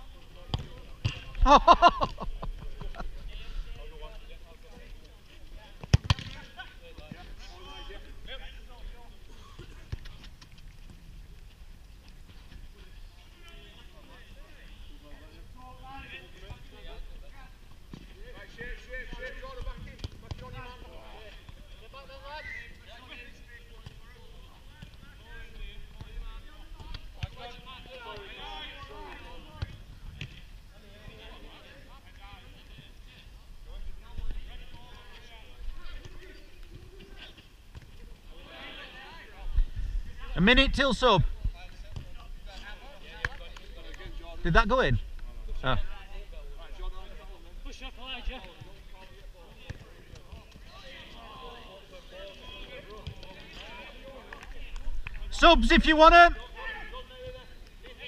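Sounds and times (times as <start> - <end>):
players calling and shouting: 12.0 - 58.0.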